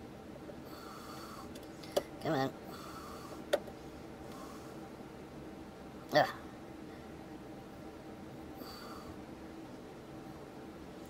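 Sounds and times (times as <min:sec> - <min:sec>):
soft breath through the nose: 0:00.6 - 0:02.0, 0:02.7 - 0:04.9.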